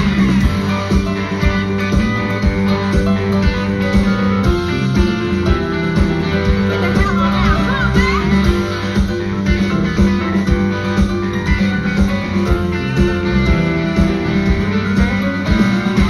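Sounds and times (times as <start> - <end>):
guitar: 0.0 - 16.0
steady drum beat: 0.0 - 16.0.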